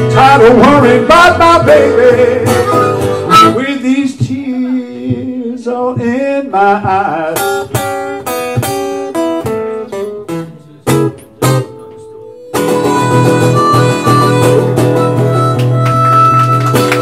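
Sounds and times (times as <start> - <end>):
acoustic guitar picking: 0.0 - 17.0
harmonica: 2.4 - 3.6, 12.3 - 17.0.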